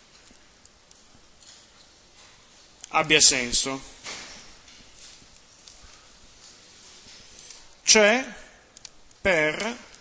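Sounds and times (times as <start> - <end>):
low steady hiss: 0.0 - 10.0.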